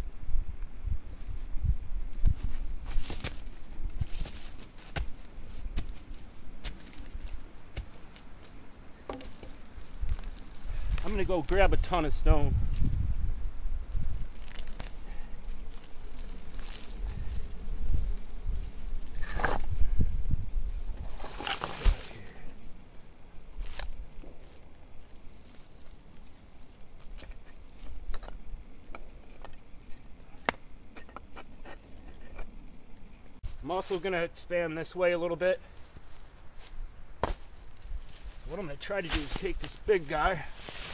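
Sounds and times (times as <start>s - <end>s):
stones scraping: 2.4s - 11.9s, 14.0s - 17.4s, 18.5s - 19.8s, 21.0s - 22.4s, 35.7s - 40.9s
rock knocking on rock: 9.1s - 9.6s.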